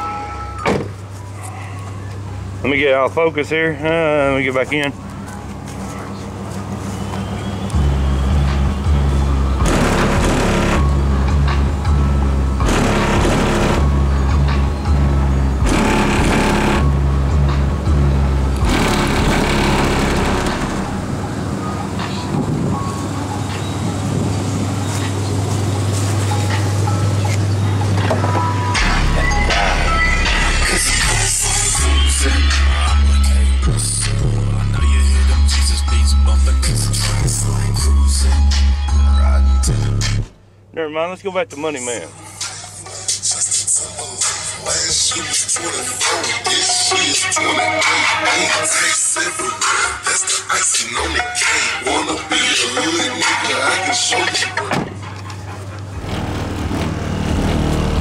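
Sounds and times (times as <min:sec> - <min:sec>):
loud music with deep bass: 0:07.8 - 0:24.1, 0:26.4 - 0:40.4, 0:42.1 - 0:55.1.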